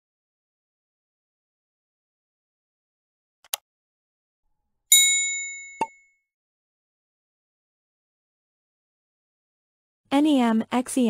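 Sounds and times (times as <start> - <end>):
bright notification bell ding: 4.9 - 6.0.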